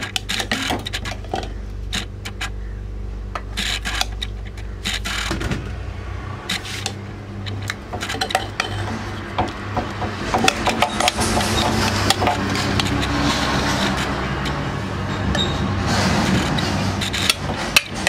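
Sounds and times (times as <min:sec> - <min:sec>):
steady low hum: 0:00.0 - 0:18.0
metal ladle scraping a pot: 0:03.5 - 0:05.3, 0:06.5 - 0:09.3, 0:10.2 - 0:18.0.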